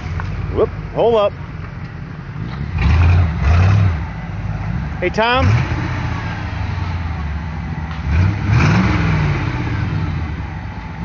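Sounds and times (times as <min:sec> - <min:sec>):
engine revving and running: 0:02.4 - 0:07.0, 0:07.9 - 0:10.5.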